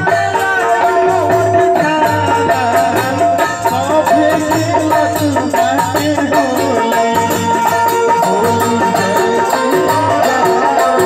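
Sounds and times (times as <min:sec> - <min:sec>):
repeating drum beat: 0:00.0 - 0:11.0.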